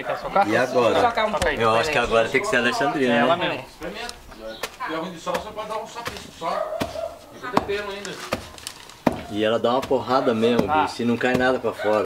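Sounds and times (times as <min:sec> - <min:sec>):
wooden pestle pounding: 0:01.0 - 0:02.1, 0:04.6 - 0:12.0.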